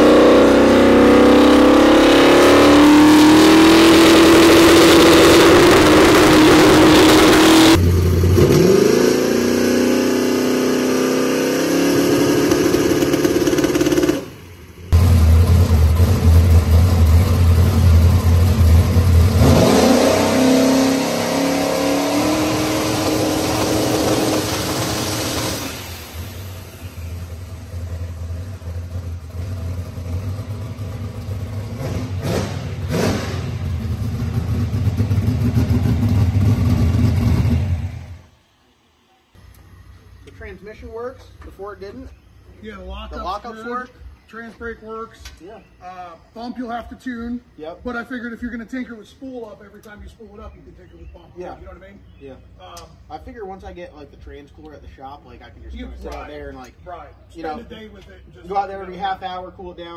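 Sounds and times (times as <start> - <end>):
turbo engine revving to rev limiter: 0.0 - 38.4.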